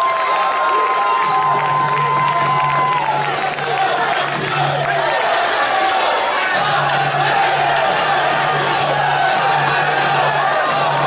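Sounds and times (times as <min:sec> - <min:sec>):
crowd cheering and shouting: 0:00.0 - 0:11.0.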